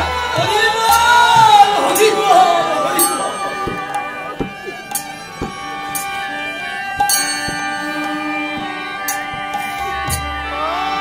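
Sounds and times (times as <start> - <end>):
harmonium chords: 0.0 - 11.0
drum struck: 3.0 - 4.7
hand cymbals clashing: 3.0 - 9.8.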